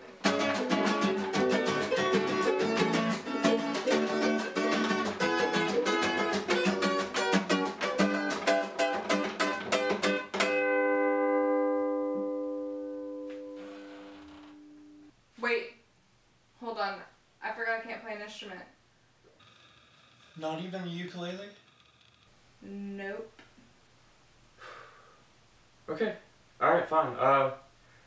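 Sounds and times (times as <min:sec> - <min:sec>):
ukulele strumming: 0:00.0 - 0:13.5
acoustic guitar strumming: 0:00.2 - 0:15.1.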